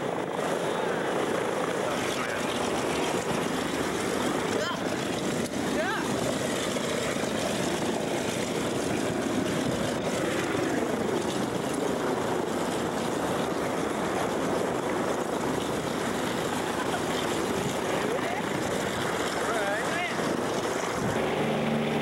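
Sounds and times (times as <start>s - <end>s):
propeller aircraft engine drone: 0.0s - 22.0s.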